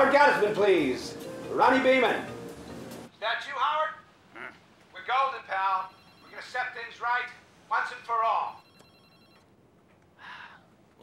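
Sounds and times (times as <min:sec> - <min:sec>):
electronic telephone ringer: 0:05.8 - 0:06.4, 0:08.5 - 0:09.4.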